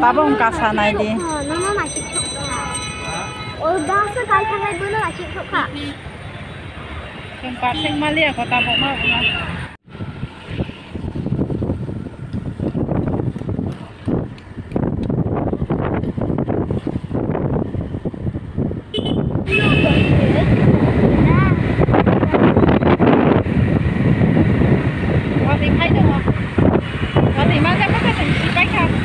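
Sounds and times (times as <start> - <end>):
motorbike engine and road noise: 0.0 - 29.0
wind buffeting microphone: 9.8 - 29.0.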